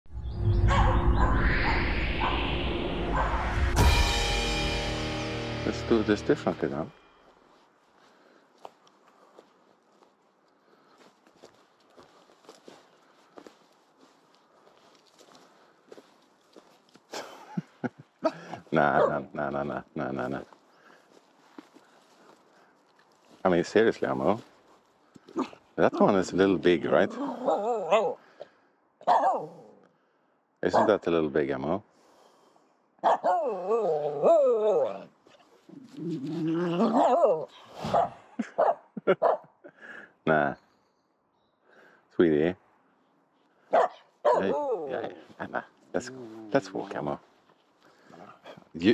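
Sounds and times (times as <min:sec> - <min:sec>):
loud burst of sound: 0:00.1 - 0:06.6
footsteps on leaves: 0:07.0 - 0:17.1, 0:20.4 - 0:23.6, 0:24.2 - 0:25.4, 0:35.2 - 0:37.1.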